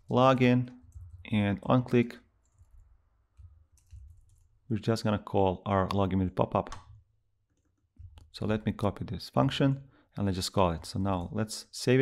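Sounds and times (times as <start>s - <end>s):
faint keyboard typing: 0.6s - 1.4s, 2.4s - 4.6s.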